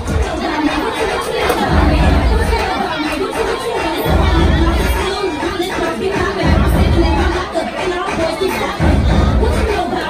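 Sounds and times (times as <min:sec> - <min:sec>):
crowd talking and shouting: 0:00.0 - 0:10.0
hip hop music with heavy bass: 0:00.0 - 0:10.0.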